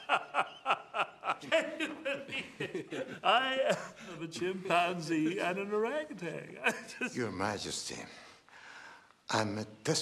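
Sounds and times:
man laughing: 0.0s - 4.0s.

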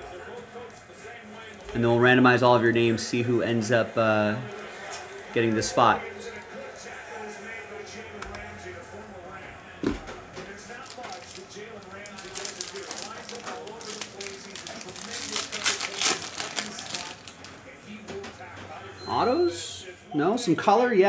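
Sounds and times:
foil wrapper tearing: 10.6s - 17.6s.

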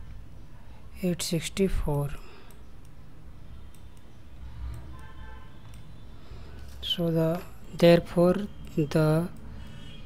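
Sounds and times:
computer mouse clicks: 2.4s - 3.0s, 3.6s - 6.8s.

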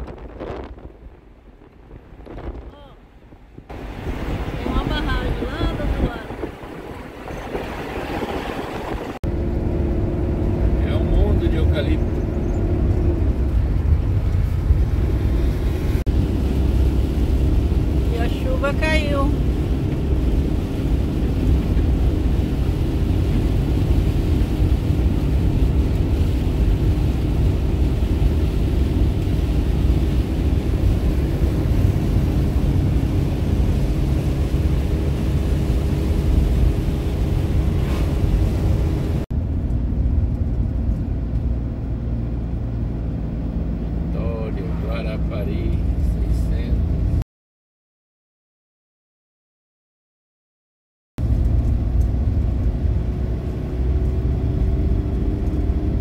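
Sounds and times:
engine and tyre rumble: 0.0s - 47.2s, 51.2s - 56.0s.

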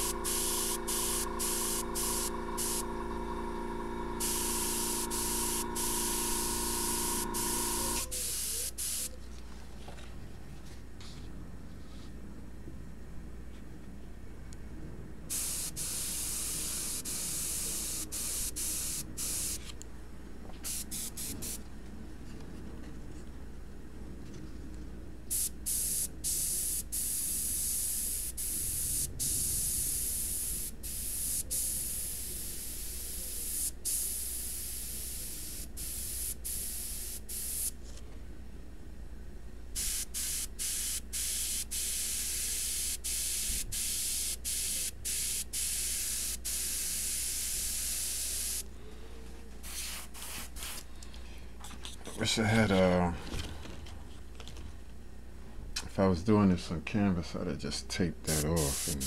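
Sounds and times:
airbrush hissing: 0.0s - 3.5s, 4.2s - 9.2s, 15.3s - 19.7s, 20.6s - 21.6s, 25.3s - 37.8s, 39.8s - 48.6s, 49.6s - 50.8s, 58.3s - 59.0s.

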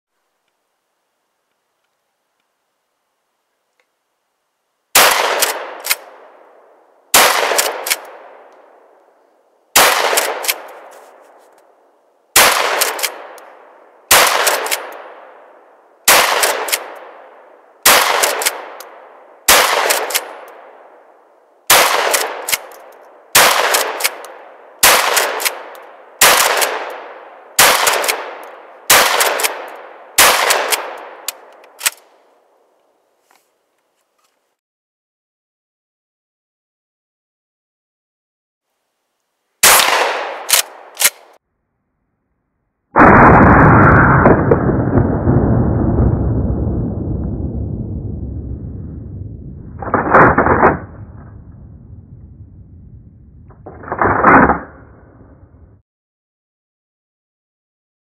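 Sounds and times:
shotgun shots: 5.0s - 6.4s, 7.1s - 8.5s, 9.8s - 11.3s, 12.4s - 20.9s, 21.7s - 32.0s, 39.6s - 41.4s, 49.6s - 51.6s, 53.5s - 55.5s.

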